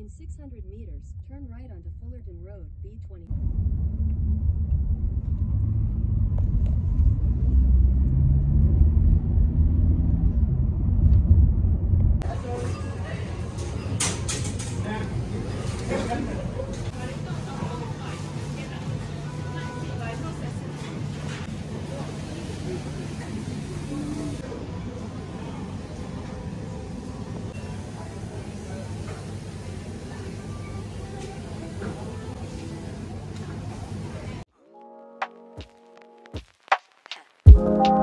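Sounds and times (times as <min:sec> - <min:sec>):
road and engine noise inside car: 0:03.3 - 0:12.4
shop hubbub: 0:12.2 - 0:34.5.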